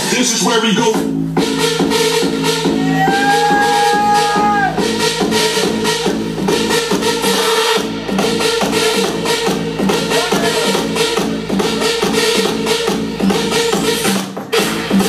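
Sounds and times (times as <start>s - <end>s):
loud house music: 0.0s - 15.0s.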